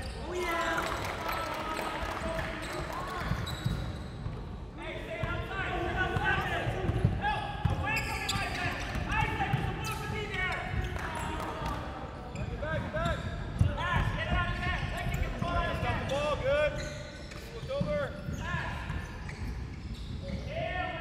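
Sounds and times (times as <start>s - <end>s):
sneakers squeaking on hardwood: 2.5s - 4.4s, 6.2s - 11.4s, 12.2s - 20.6s.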